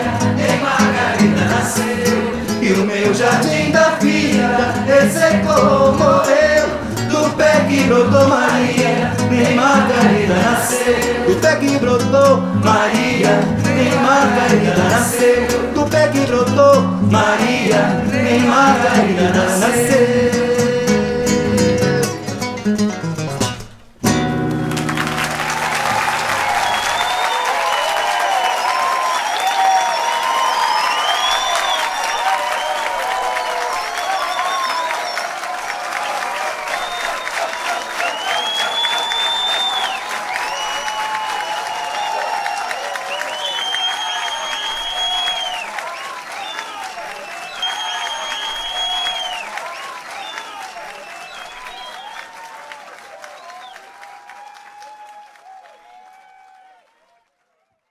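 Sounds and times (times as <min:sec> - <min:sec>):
audience applauding and cheering: 0:00.0 - 0:23.2, 0:24.2 - 0:57.9
guitar notes: 0:00.0 - 0:26.0
audience shouts: 0:25.0 - 0:57.1
whistles from audience: 0:25.4 - 0:56.8.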